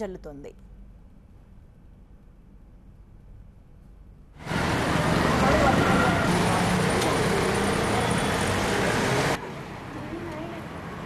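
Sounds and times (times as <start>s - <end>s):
street traffic: 4.0s - 11.0s.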